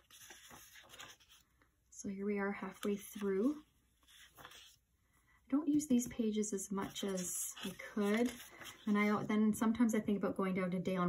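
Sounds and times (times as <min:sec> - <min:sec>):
paper page rustling: 0:00.0 - 0:01.6, 0:02.5 - 0:04.8, 0:06.7 - 0:09.2.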